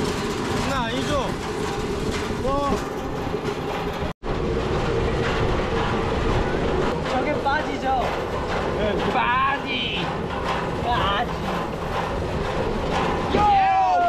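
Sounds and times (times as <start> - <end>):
rails clacking: 0.0 - 14.0
steel wheels rolling on railway track: 0.0 - 14.0.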